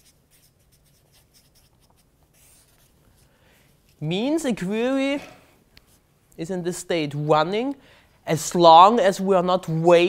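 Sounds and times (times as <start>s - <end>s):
marker strokes on a whiteboard: 0.0s - 4.1s.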